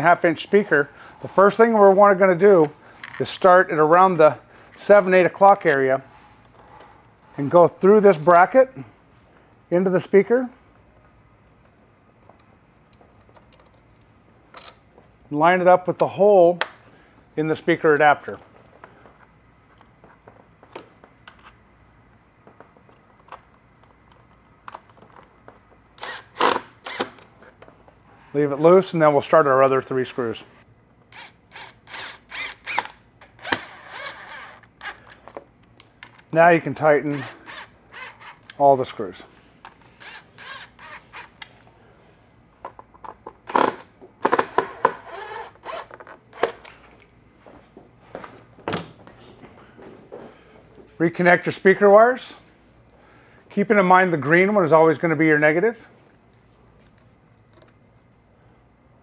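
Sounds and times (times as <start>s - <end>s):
parts being handled: 2.5s - 3.4s, 37.5s - 50.9s.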